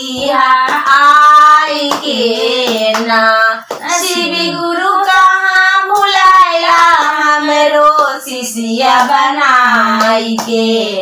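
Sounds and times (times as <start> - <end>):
hand claps: 0.0 - 4.3, 5.0 - 10.7
women singing devotional song: 0.0 - 11.0.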